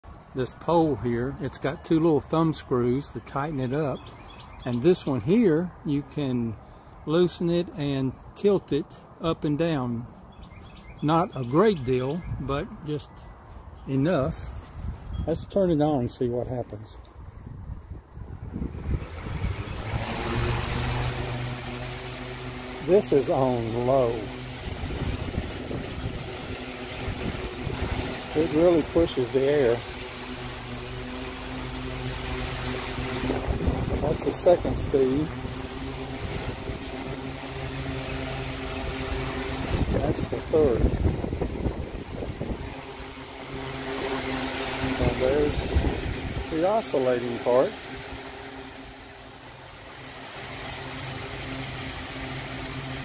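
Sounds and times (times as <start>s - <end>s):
fan air rushing: 0.0s - 53.0s
fan motor hum: 0.0s - 53.0s.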